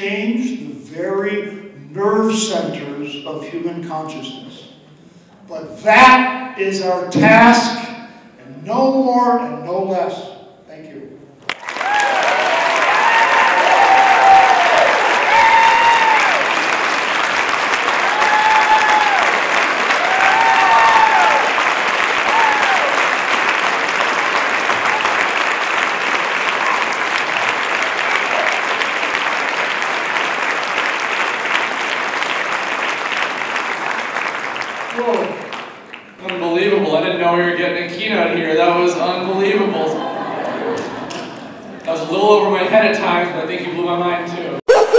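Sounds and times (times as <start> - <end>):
audience applauding: 11.5 - 36.1
voices cheering: 11.6 - 16.9, 17.8 - 23.2, 44.7 - 44.9.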